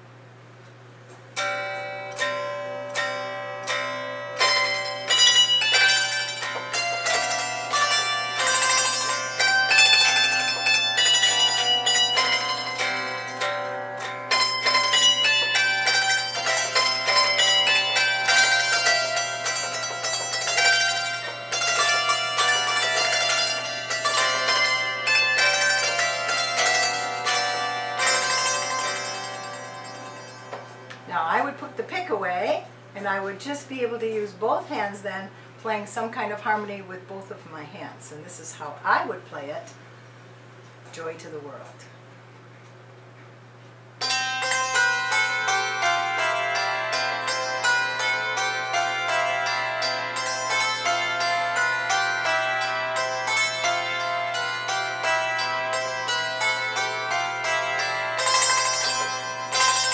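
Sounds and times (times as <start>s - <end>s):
zither playing a carol: 1.3s - 33.2s, 44.0s - 59.9s.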